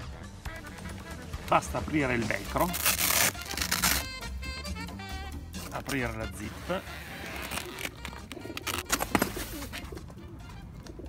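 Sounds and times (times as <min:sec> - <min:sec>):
background music: 0:00.0 - 0:11.0
velcro strap ripping open: 0:02.6 - 0:04.2, 0:06.9 - 0:09.2.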